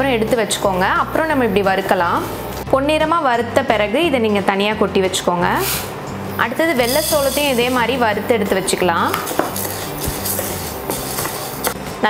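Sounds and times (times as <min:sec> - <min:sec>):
background music: 0:00.0 - 0:12.0
grains rattling in frying pan: 0:06.8 - 0:07.9, 0:09.5 - 0:11.7.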